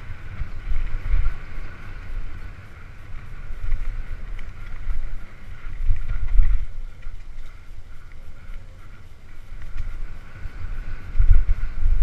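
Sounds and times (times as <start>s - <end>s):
bike rumbling over rough ground: 0.0s - 12.0s
wind buffeting microphone: 0.0s - 12.0s.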